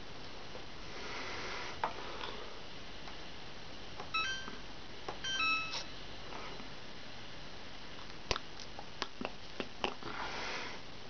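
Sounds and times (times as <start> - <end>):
washing machine beeps: 4.1 - 4.6, 5.2 - 5.9.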